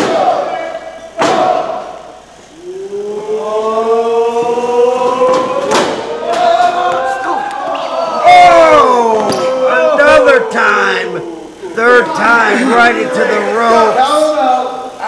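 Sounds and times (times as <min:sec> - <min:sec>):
long held vocal call rising: 0:02.5 - 0:05.6.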